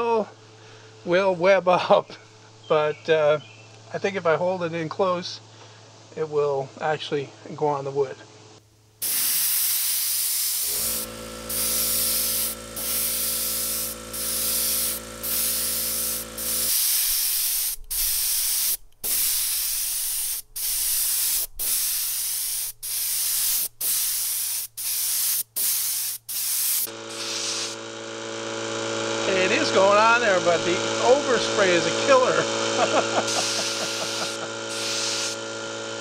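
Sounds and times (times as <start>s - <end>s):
spray gun hissing: 9.0s - 27.8s, 33.2s - 35.4s
air compressor motor humming: 9.0s - 36.0s.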